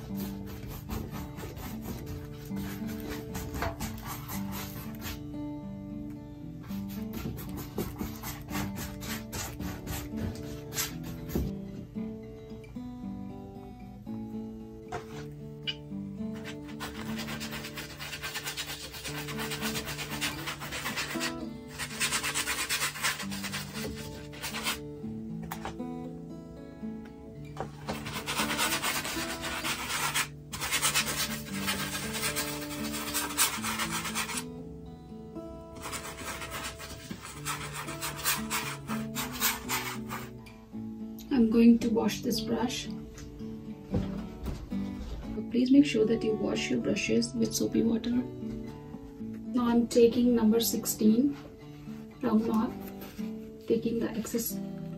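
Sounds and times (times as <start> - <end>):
paintbrush scrubbing canvas: 0.0 - 5.2, 6.8 - 11.5, 16.4 - 24.8, 27.7 - 34.4, 35.8 - 40.3
soft background music: 0.0 - 54.9.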